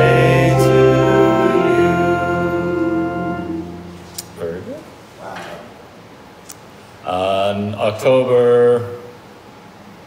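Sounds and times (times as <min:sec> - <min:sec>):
held keyboard chord: 0:00.0 - 0:04.6.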